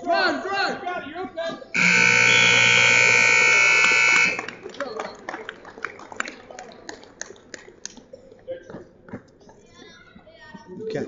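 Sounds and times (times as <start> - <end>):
scoreboard buzzer: 1.8 - 4.6.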